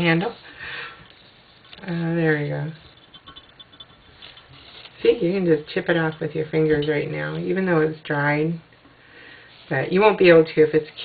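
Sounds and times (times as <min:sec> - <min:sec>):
fingernails scraping paint off glass: 0:02.8 - 0:06.2.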